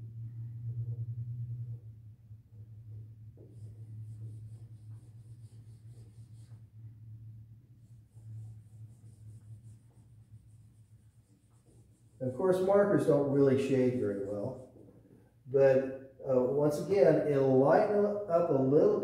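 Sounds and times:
low room hum: 0.0 - 19.0
marker scratching on whiteboard: 2.9 - 6.8, 7.8 - 12.7, 14.1 - 15.0.

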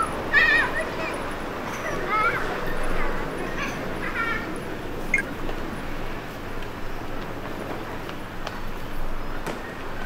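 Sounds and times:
busy street background: 0.0 - 10.0
short high wavering calls: 5.1 - 5.3.

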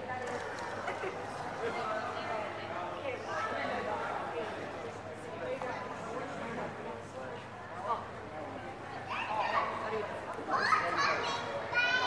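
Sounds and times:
people talking in a large hall: 0.0 - 12.0.

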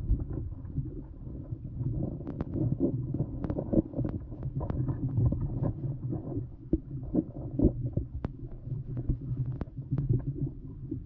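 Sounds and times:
muffled underwater river rumble: 0.0 - 11.0.

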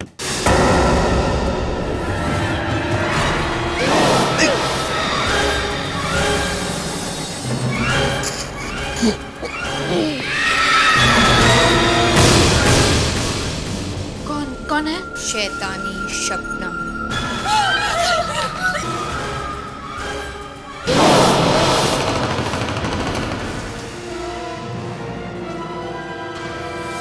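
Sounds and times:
dramatic boom hit: 0.4 - 5.2
high wavering ghost wail: 17.2 - 19.0.

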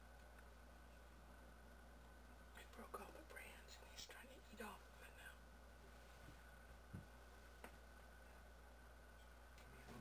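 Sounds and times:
quiet background hum: 0.0 - 10.0.

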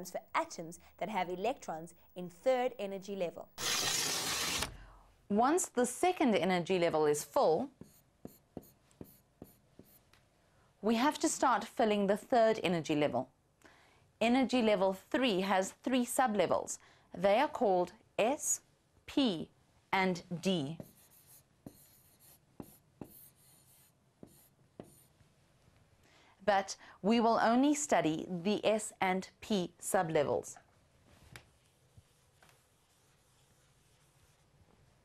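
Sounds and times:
woman talking: 0.0 - 3.5, 14.2 - 20.9
marker pen drawing on board: 0.2 - 4.7, 7.8 - 10.1, 20.8 - 25.2.

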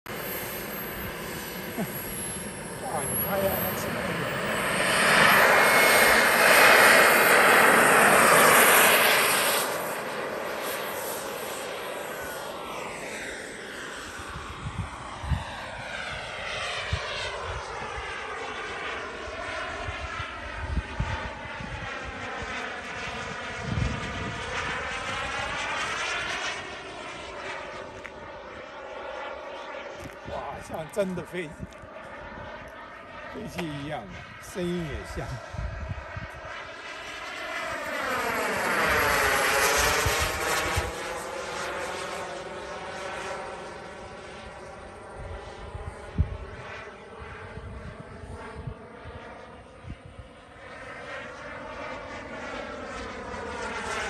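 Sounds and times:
model jet turbine whine: 0.1 - 54.0.

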